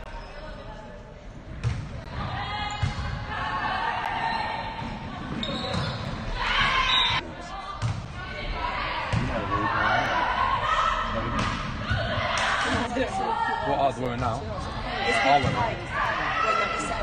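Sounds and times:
players calling and shouting: 1.6 - 17.0.

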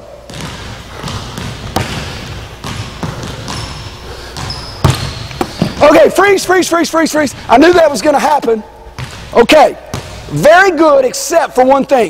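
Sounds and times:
basketball bouncing on wood floor: 0.3 - 6.0, 9.0 - 10.2
sneaker squeaks on floor: 2.7 - 5.8.

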